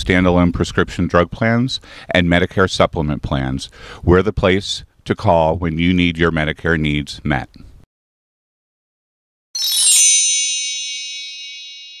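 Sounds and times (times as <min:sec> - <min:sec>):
bright high chime: 0:09.6 - 0:12.0.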